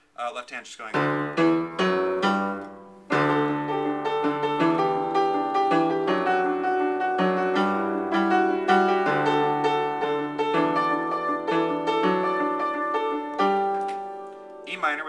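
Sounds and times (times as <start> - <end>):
piano playing chords: 1.0 - 15.0.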